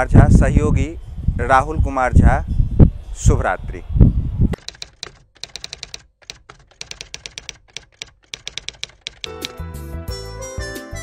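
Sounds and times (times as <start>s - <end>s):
rapid typing clicks: 4.6s - 9.6s
music: 9.3s - 11.0s.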